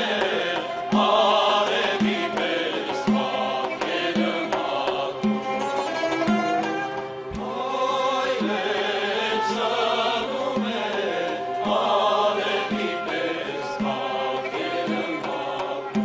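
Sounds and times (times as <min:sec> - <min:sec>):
frame drum beats: 0:00.0 - 0:16.0
mixed choir singing: 0:00.0 - 0:16.0.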